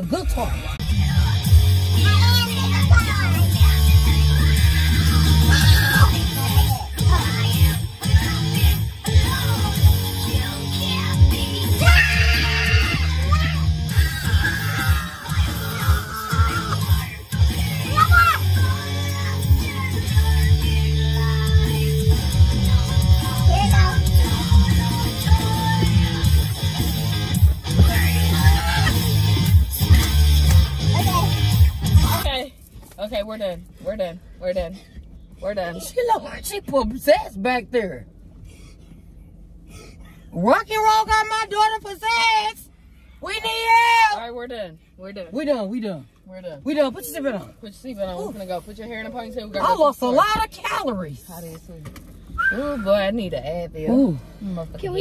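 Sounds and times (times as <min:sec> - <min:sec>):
loud rock music: 0:00.0 - 0:32.2.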